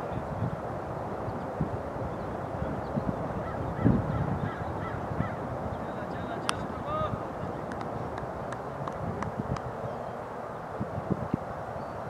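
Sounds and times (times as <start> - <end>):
wind rumbling on microphone: 0.0 - 12.0
bird-like calls: 2.1 - 6.1.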